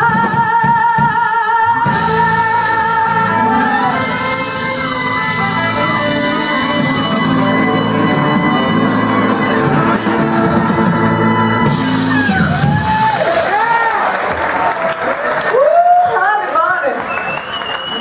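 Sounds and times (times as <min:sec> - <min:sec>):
blues band held chord: 0:02.0 - 0:13.2
audience cheering and whooping: 0:08.8 - 0:18.0.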